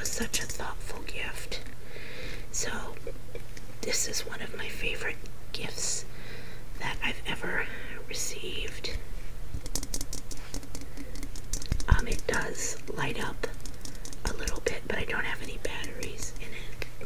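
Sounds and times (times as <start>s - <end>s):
rapid small clicks: 9.6s - 17.0s.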